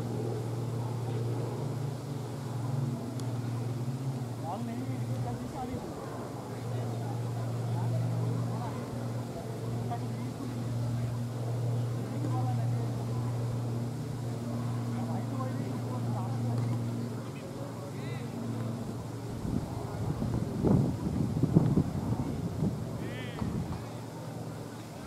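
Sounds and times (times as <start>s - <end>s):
faint voices: 0.0s - 25.0s
low engine-like hum: 0.0s - 25.0s.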